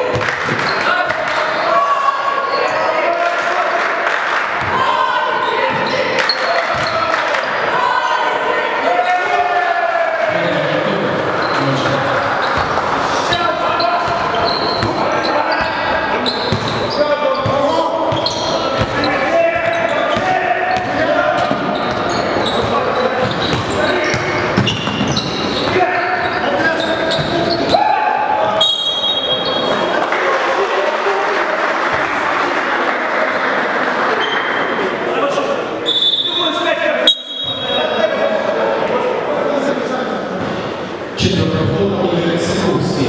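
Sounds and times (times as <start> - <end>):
crowd din: 0.0 - 43.0.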